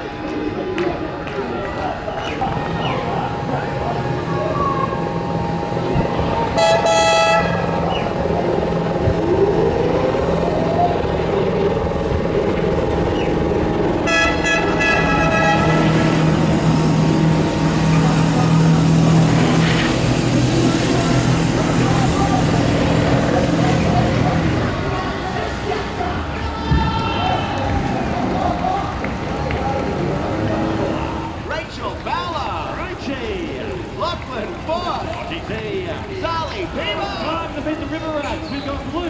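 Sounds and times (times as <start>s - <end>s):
engine droning: 0.0s - 39.0s
air horn blasts: 6.5s - 7.8s, 14.0s - 16.7s.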